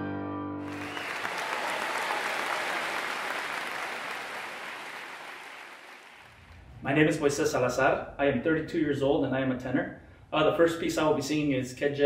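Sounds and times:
audience applause: 0:00.6 - 0:06.4.

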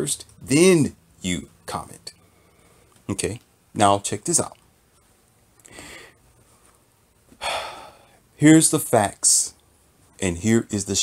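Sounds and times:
man breathing through mouth: 0:05.6 - 0:06.2.

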